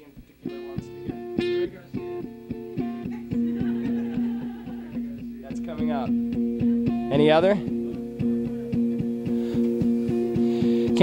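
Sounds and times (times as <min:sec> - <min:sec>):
acoustic guitar strumming: 0:00.4 - 0:11.0.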